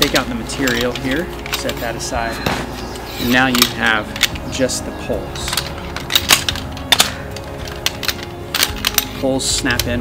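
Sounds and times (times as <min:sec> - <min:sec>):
metal poles clacking together: 0:00.0 - 0:10.0.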